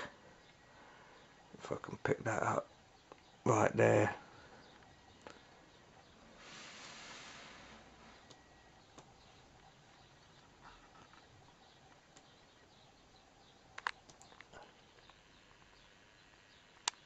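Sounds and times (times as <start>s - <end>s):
faint sharp clicks: 11.9s - 12.4s, 13.7s - 15.8s, 16.8s - 17.0s.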